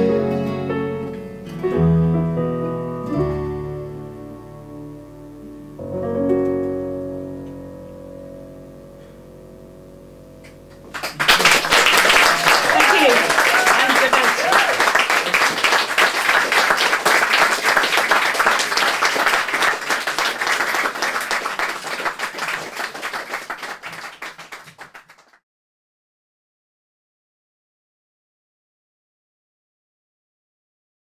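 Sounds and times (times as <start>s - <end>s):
audience applauding: 10.7s - 25.4s
voices cheering and calling out: 12.2s - 15.4s.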